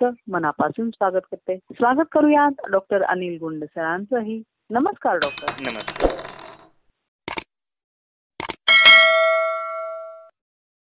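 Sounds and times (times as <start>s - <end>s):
bell-like notification ding: 8.7s - 10.3s.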